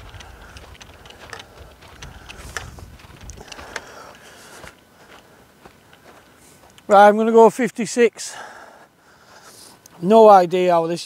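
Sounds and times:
wind rumble on microphone: 0.0 - 3.8
footsteps crunching on frosted grass: 0.0 - 7.6.

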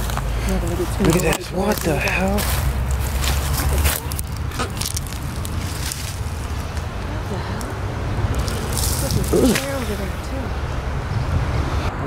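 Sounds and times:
rustling through leafy ground cover: 0.0 - 10.5
wind buffeting microphone: 0.0 - 12.0
faint voices: 6.8 - 10.6.

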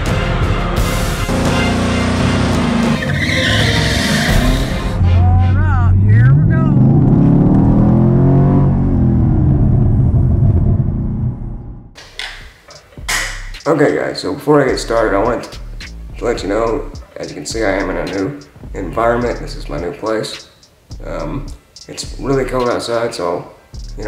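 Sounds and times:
car engine revving: 0.0 - 12.0
tires squealing on pavement: 1.3 - 8.2.

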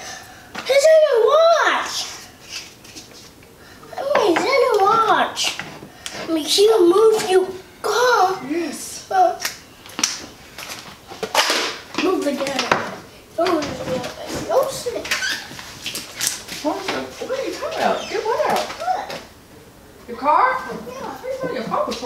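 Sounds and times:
young child talking: 0.6 - 2.2, 3.9 - 5.6, 6.2 - 9.5, 12.0 - 15.4, 20.2 - 22.0.

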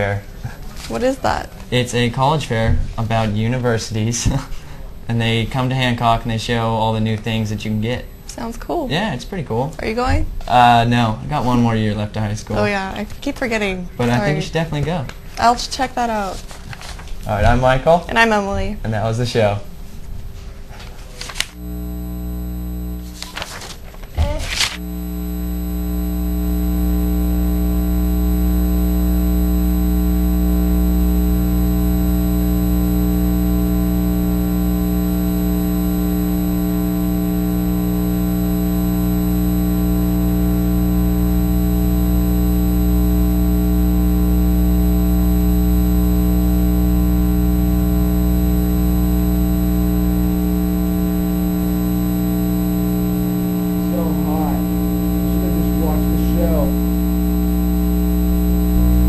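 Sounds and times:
buzzing drone: 21.5 - 23.4, 24.7 - 59.0.

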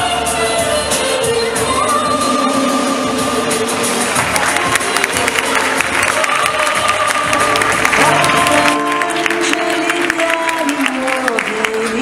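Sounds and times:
music playing: 0.0 - 12.0
audience clapping and cheering: 3.8 - 12.0.

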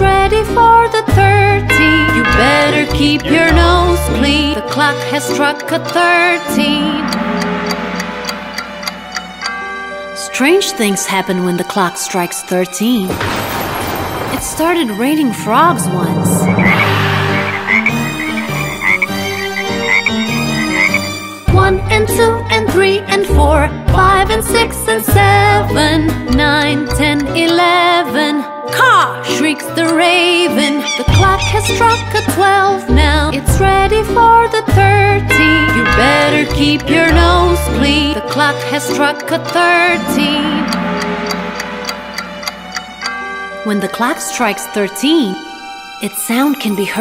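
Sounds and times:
held musical note: 1.6 - 4.4, 6.3 - 11.6, 35.2 - 37.4, 39.4 - 45.9
clock ticking: 1.6 - 11.9, 15.6 - 21.0, 24.6 - 27.8, 34.7 - 45.1
frogs croaking: 16.2 - 21.4, 30.6 - 32.6, 35.3 - 37.4
music with stepping bass line: 35.4 - 36.6.

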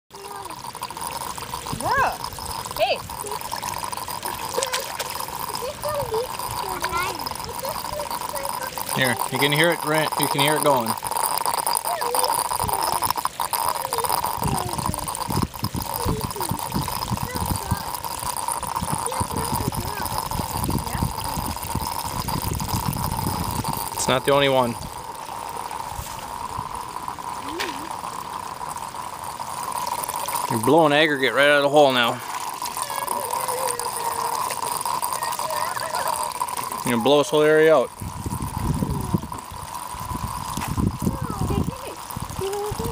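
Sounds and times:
water running and gurgling: 0.0 - 42.9.

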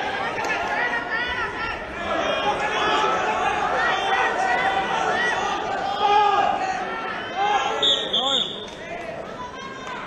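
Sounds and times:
referee whistle blasts: 7.8 - 8.7.

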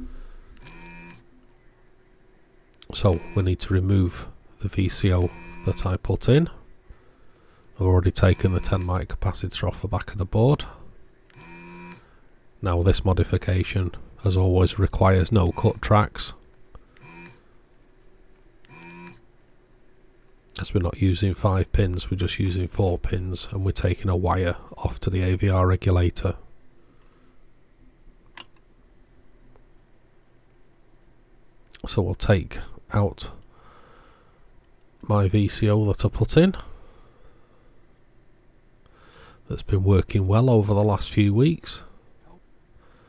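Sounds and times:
desoldering vacuum pump buzz: 0.0 - 17.6, 18.6 - 19.4.

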